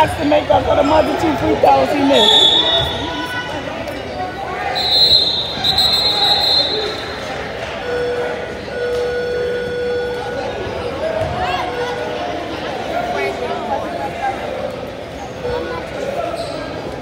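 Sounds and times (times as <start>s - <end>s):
people's voices: 0.0s - 17.0s.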